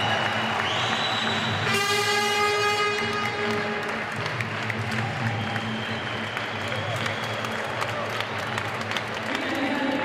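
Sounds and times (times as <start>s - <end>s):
background music: 0.0s - 10.0s
crowd noise: 0.0s - 10.0s
horn tone: 1.3s - 4.0s.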